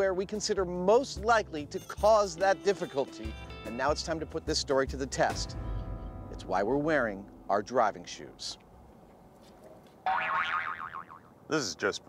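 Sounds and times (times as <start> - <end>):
cartoon boing sound effect: 10.1 - 11.3.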